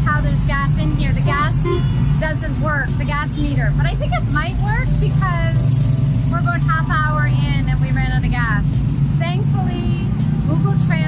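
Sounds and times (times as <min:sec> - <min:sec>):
people talking: 0:00.0 - 0:11.0
street traffic rumble: 0:00.0 - 0:11.0.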